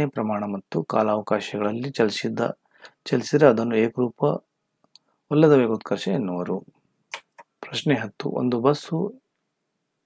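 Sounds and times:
man speaking: 0.0s - 4.5s, 5.3s - 9.2s.

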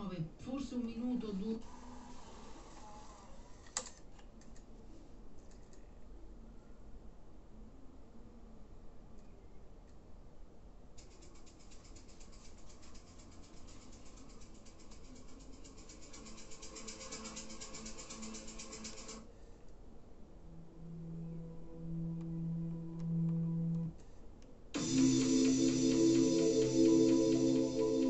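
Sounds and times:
low held tones: 20.4s - 23.9s, 24.8s - 28.0s
hiss with rapid pulse: 24.8s - 28.0s.

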